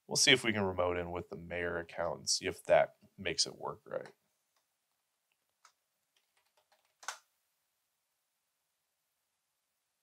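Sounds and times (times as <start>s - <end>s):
keyboard key clicks: 5.6s - 7.2s.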